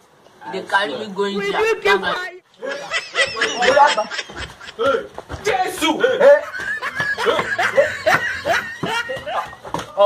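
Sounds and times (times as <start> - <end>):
people laughing: 2.6 - 10.0.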